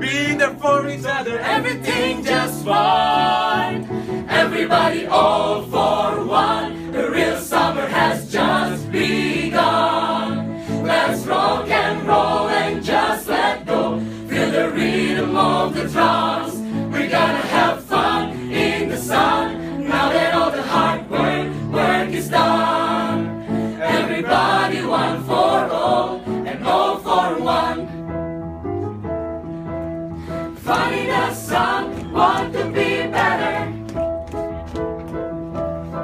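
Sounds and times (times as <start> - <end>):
choir singing pop song: 1.3 - 28.0, 30.4 - 33.8.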